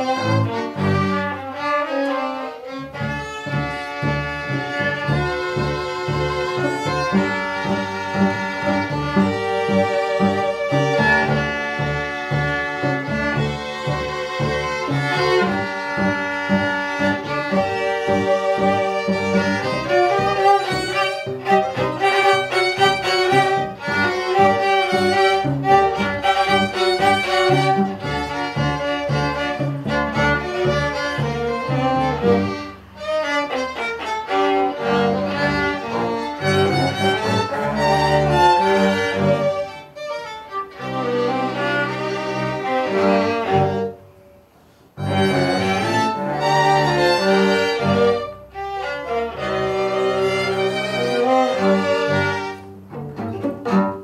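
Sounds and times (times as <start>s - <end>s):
cello: 0.0s - 54.0s
double bass: 0.0s - 54.0s
violins: 0.0s - 54.0s.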